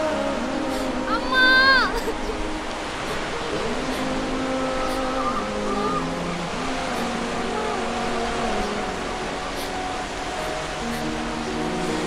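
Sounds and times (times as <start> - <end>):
sea surf rushing: 0.0 - 12.0
wind: 0.0 - 12.0.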